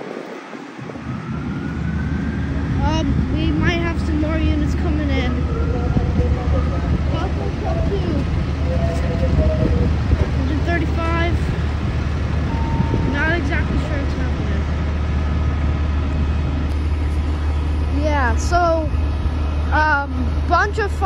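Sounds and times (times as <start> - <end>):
diesel engines idling: 0.0 - 21.0
people talking: 2.8 - 11.6, 12.5 - 14.7, 17.9 - 19.0, 19.7 - 21.0.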